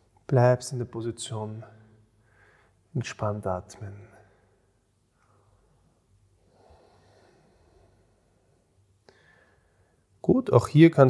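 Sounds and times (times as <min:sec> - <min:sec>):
faint breath: 0:02.2 - 0:02.9, 0:05.2 - 0:10.2.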